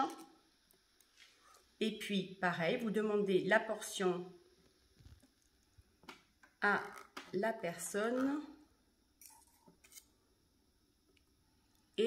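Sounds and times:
knife scraping through cheese: 9.2s - 10.1s.

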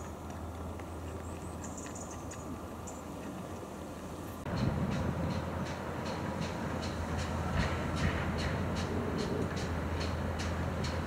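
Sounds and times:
steam locomotive exhaust beats: 4.5s - 11.0s.

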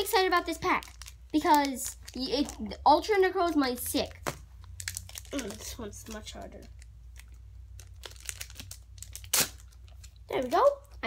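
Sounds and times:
foil wrapper crinkling: 0.6s - 2.6s, 4.6s - 11.0s
foil wrapper ripping: 4.7s - 5.8s, 7.2s - 10.1s.

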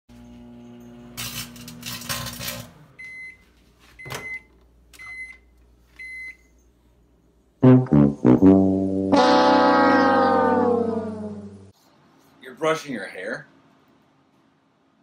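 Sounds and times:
microwave oven humming: 0.1s - 6.2s
microwave beeping: 3.0s - 3.4s, 4.0s - 6.4s
brass-led music: 7.6s - 11.7s.

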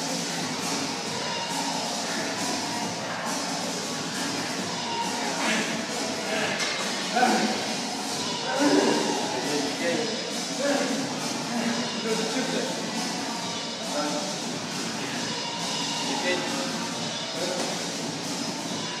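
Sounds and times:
background music: 0.0s - 19.0s
voices: 0.2s - 19.0s.

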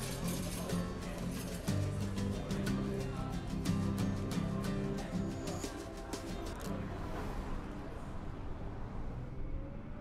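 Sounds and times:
plucked guitar music: 0.0s - 6.7s.

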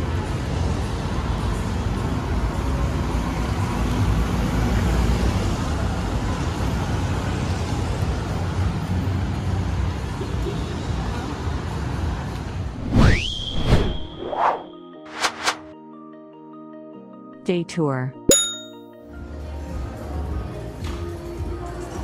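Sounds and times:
cars and motorbikes driving past: 0.0s - 12.7s.

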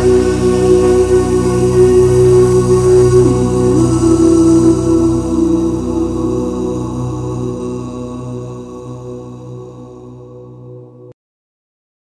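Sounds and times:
layered voices singing a chord: 0.0s - 11.1s.

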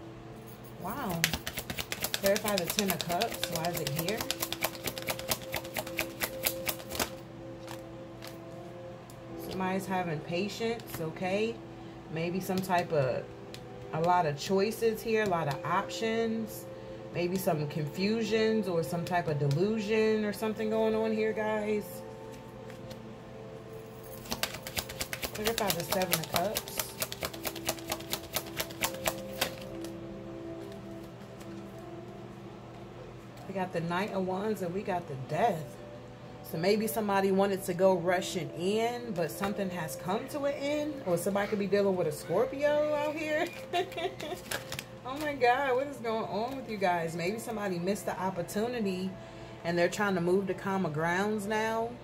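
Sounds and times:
soft background music: 0.0s - 52.0s
cards being shuffled: 1.0s - 8.4s, 24.1s - 30.0s, 30.6s - 31.7s, 43.4s - 44.9s.

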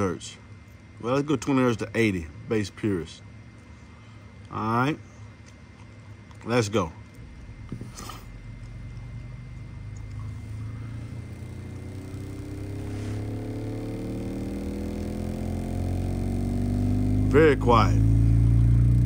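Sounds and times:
low sine sweep tone rising: 7.2s - 19.0s.

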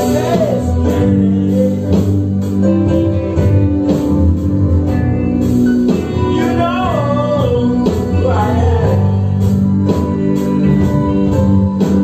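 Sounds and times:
electric bass: 0.0s - 12.0s
guitar: 0.0s - 12.0s
keyboard chords: 0.0s - 12.0s.

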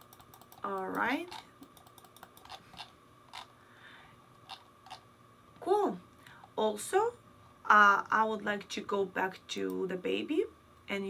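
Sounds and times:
keyboard and mouse clicks: 0.0s - 3.5s.

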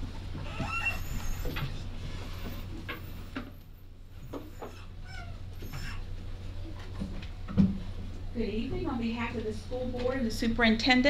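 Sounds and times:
faint knocks and shuffles: 0.0s - 10.5s
low electrical hum: 0.0s - 11.0s
brief high squeaks: 0.4s - 1.8s.

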